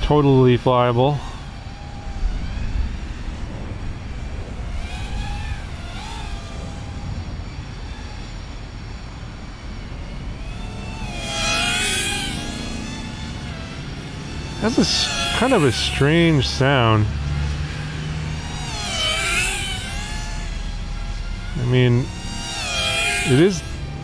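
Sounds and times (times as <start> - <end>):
drone motors and propellers whining: 0.0 - 24.0
low rumble: 1.2 - 11.1.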